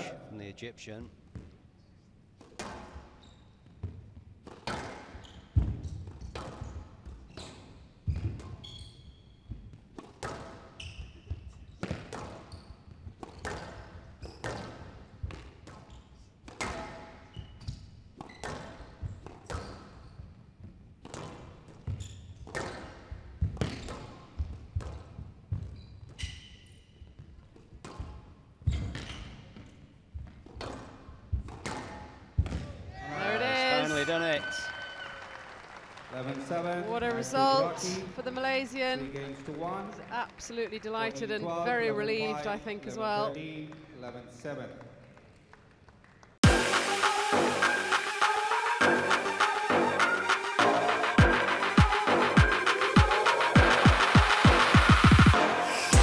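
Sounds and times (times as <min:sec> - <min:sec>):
court shoes squeaking: 0:01.2 - 0:35.2.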